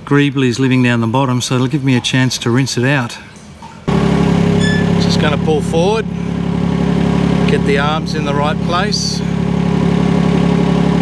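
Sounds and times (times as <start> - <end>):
excavator engine running: 3.9 - 11.0.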